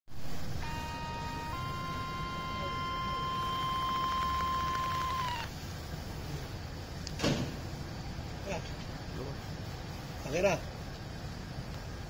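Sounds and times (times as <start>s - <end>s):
small motor whining: 0.6s - 5.6s.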